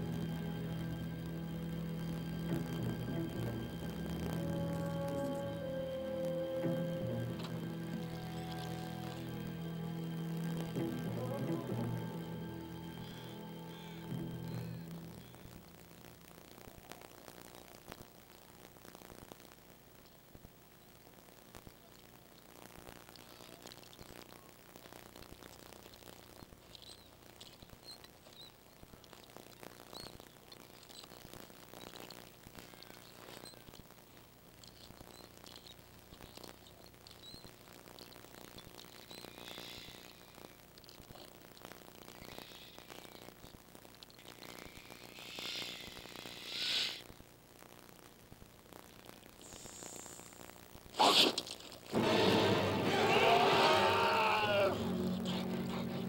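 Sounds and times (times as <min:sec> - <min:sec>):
faint bird chirps: 0:26.0 - 0:33.9, 0:34.6 - 0:40.7, 0:41.6 - 0:47.0
loud burst of noise: 0:51.9 - 0:55.8.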